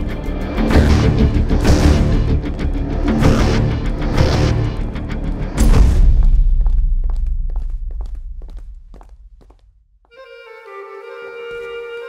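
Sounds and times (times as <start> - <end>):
low rumble: 0.0 - 10.0
footsteps of people walking: 6.1 - 12.0.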